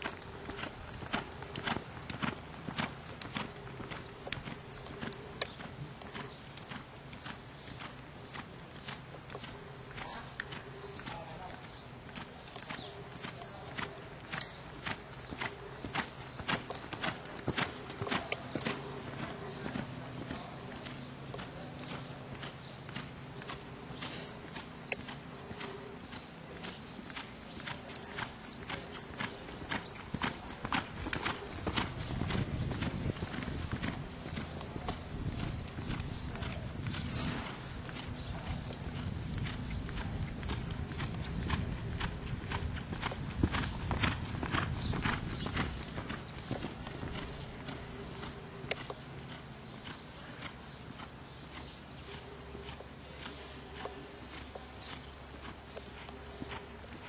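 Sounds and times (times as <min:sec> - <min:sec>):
horse hoofbeats clip-clop: 0:00.0 - 0:57.0.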